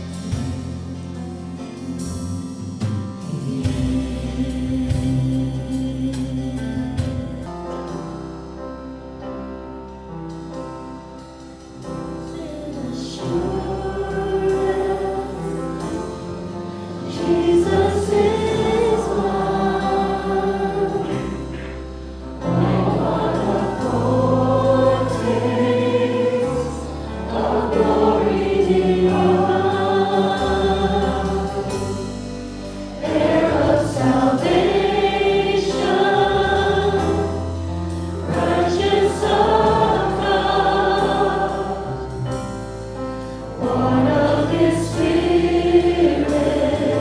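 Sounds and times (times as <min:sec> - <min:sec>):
congregation singing: 0:00.0 - 0:02.0, 0:02.8 - 0:07.6, 0:12.2 - 0:47.0
worship band playing: 0:00.0 - 0:47.0.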